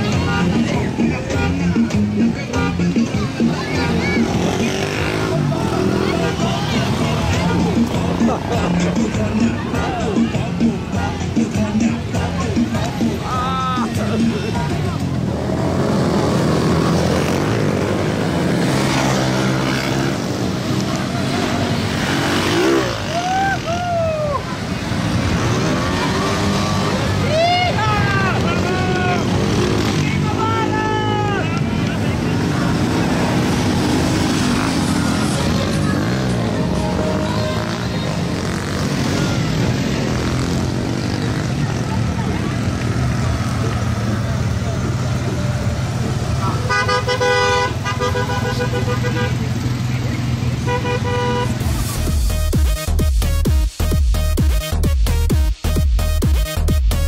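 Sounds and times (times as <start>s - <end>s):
people's voices: 0.0s - 52.9s
vehicle engines at low speed: 0.0s - 57.0s
people whooping: 22.8s - 24.6s, 27.2s - 28.3s.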